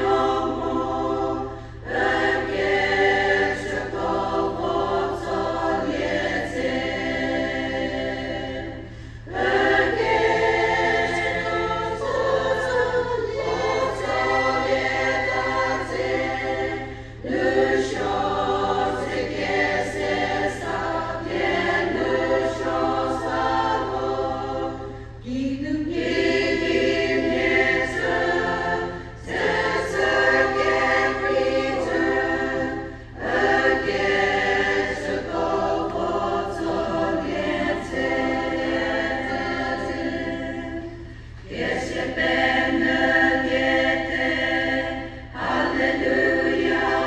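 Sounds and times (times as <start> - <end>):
women's choir singing a hymn: 0.0 - 47.0.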